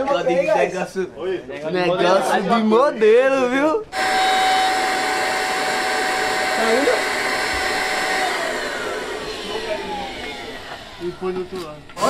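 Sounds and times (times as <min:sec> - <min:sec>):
electric air pump whining: 0:03.9 - 0:12.0.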